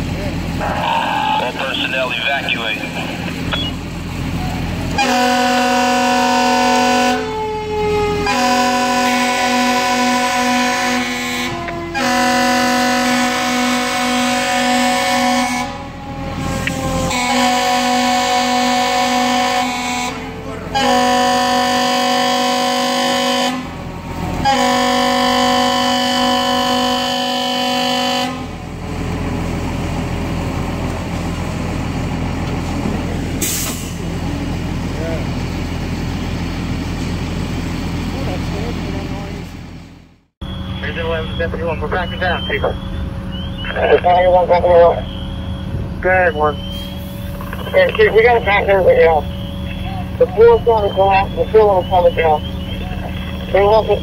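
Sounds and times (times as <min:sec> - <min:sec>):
steady rumble: 0:00.0 - 0:05.2, 0:34.0 - 0:54.0
siren winding down: 0:03.0 - 0:28.2, 0:40.4 - 0:54.0
fire truck air horn blasts: 0:04.9 - 0:28.6, 0:33.4 - 0:34.1.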